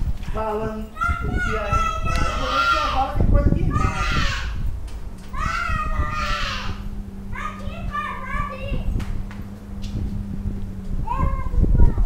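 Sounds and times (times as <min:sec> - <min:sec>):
children calling and chattering: 0:00.0 - 0:12.0
steady low hum: 0:00.0 - 0:12.0.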